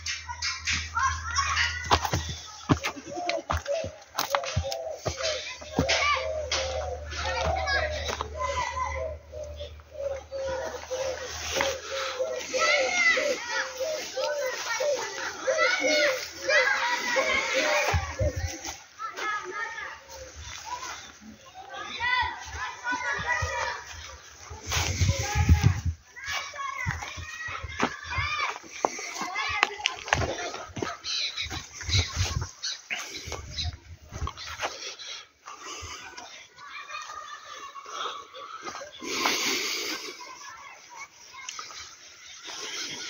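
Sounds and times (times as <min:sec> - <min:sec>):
children chattering and calling out: 0:00.0 - 0:43.0
indistinct background voices: 0:00.0 - 0:43.0.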